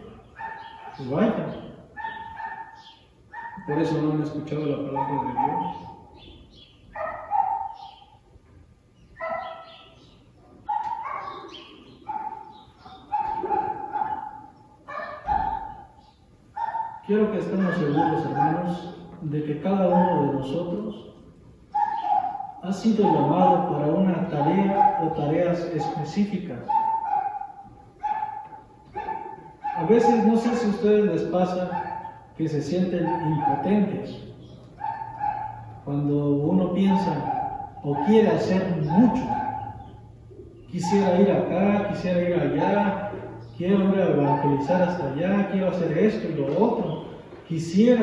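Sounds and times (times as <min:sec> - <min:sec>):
dog barking and yelping: 0:00.3 - 0:01.0, 0:02.0 - 0:03.8, 0:04.9 - 0:06.0, 0:07.0 - 0:08.1, 0:09.2 - 0:16.0, 0:16.6 - 0:17.0, 0:19.9 - 0:20.4, 0:21.7 - 0:23.7, 0:24.4 - 0:25.2, 0:25.8 - 0:26.1, 0:26.7 - 0:30.3, 0:31.6 - 0:32.4, 0:33.0 - 0:33.9, 0:34.7 - 0:35.8, 0:36.9 - 0:41.2, 0:44.2 - 0:45.0.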